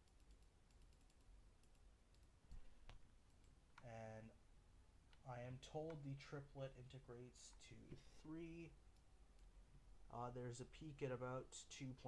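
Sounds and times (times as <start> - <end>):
computer mouse clicks: 0.0 - 3.9.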